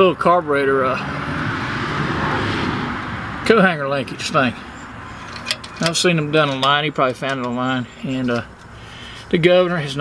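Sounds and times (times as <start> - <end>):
vehicle passing by: 0.0 - 5.6.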